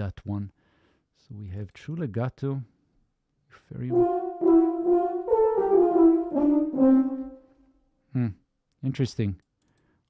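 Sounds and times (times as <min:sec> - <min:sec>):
euphonium ensemble playing legato: 0:03.9 - 0:07.6.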